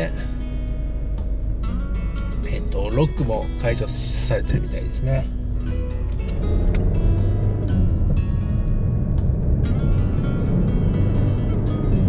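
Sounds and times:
diesel engine rumble inside car: 0.0s - 12.0s
music: 0.0s - 12.0s.

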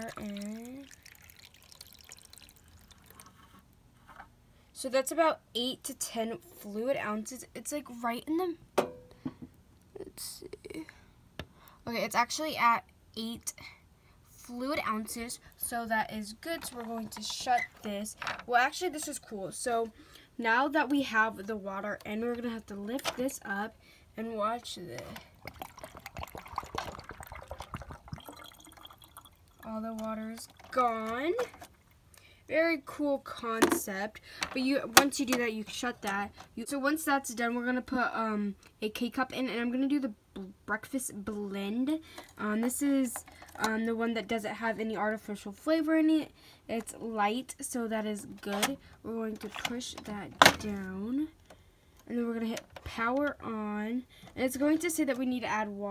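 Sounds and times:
water trickling into reservoir: 0.0s - 3.7s, 24.8s - 32.3s.

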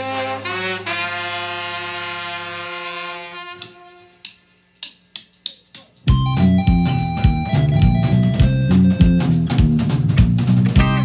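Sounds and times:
rock band brass chord: 0.0s - 4.1s, 10.7s - 11.0s
sharp percussive hit: 5.2s - 11.0s.

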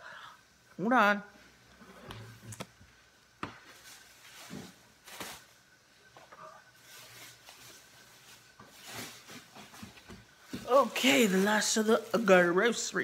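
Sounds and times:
grocery bag rustle: 3.7s - 5.7s, 6.7s - 13.0s.

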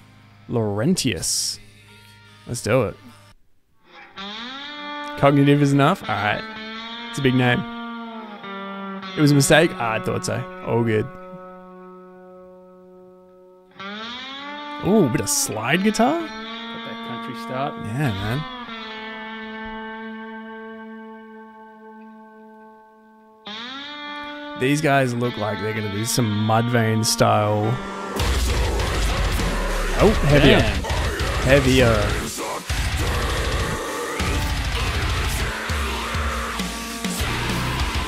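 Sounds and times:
electric slide guitar note: 3.9s - 38.0s.

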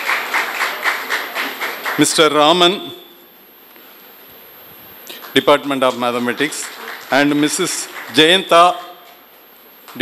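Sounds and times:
audience clapping in rhythm: 0.0s - 2.4s, 5.1s - 9.0s.

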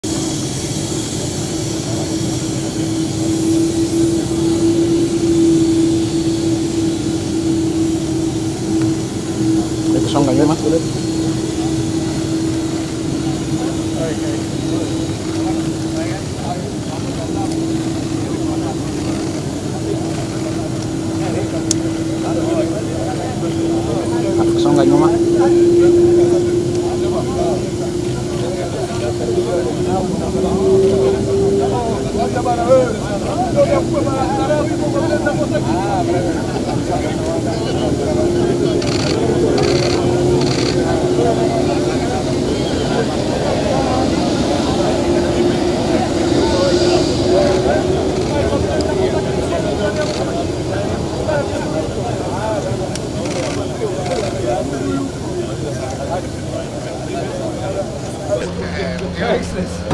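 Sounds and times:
scattered voices: 0.0s - 59.9s
turboprop engine drone: 0.0s - 59.9s.

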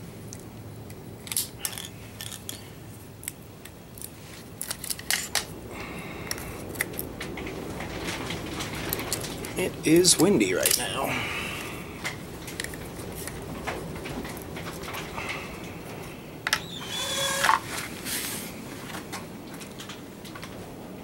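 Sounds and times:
metallic clip leads clinking: 1.2s - 5.5s.

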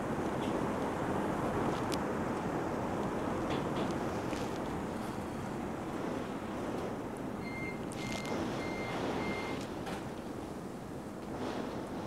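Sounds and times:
storm wind and rain: 0.0s - 12.0s
alarm beeping: 7.4s - 9.6s.

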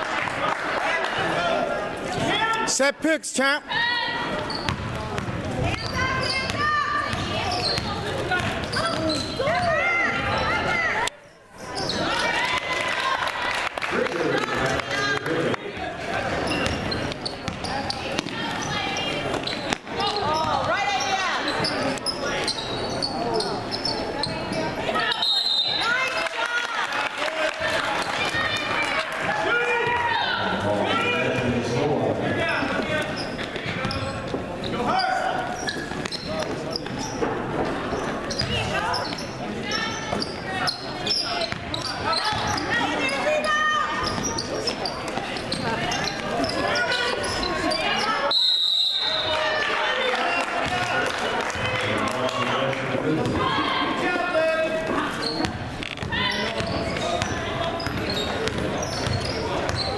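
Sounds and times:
players and spectators calling out: 0.0s - 59.9s
basketball bouncing on wooden floor: 4.6s - 9.2s, 55.4s - 59.9s.

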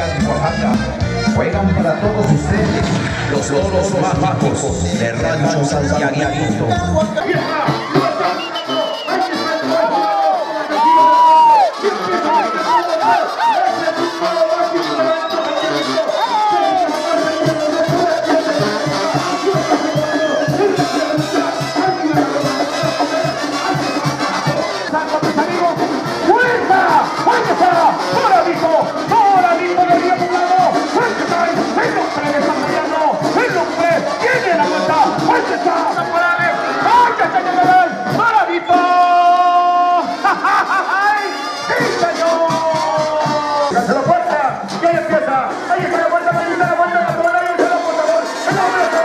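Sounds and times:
crowd shouting and cheering: 0.0s - 49.0s
music with a steady beat: 0.0s - 49.0s.

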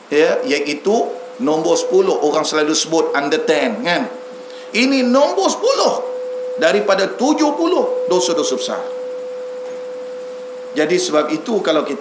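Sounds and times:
microphone feedback tone: 0.0s - 12.0s
steady hiss: 0.0s - 12.0s.

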